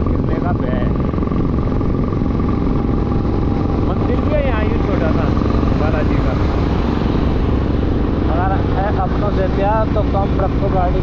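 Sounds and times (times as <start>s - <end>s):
motorcycle engine cruising: 0.0s - 11.0s
wind rushing on microphone: 0.0s - 11.0s.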